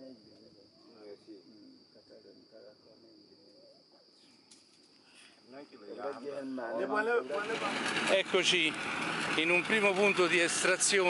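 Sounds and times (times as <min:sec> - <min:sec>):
voices talking: 0:00.0 - 0:04.2, 0:05.4 - 0:11.0
outdoor noise: 0:00.0 - 0:11.0.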